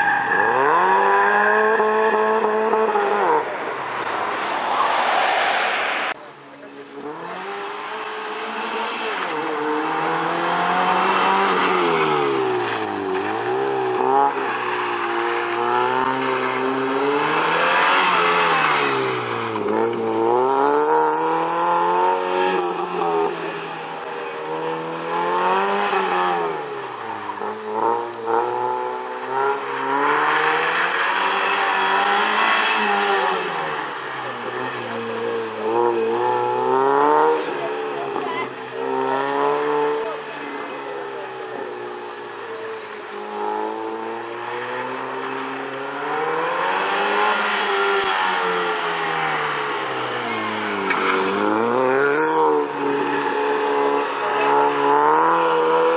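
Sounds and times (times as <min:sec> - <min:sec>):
rally car engine revving: 0:00.0 - 0:55.9.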